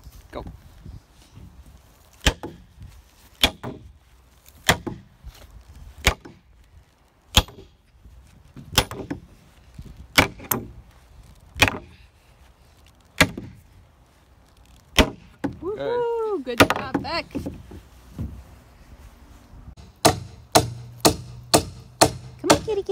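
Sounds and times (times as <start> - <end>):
hammer driving nail into wood: 19.8 - 22.7.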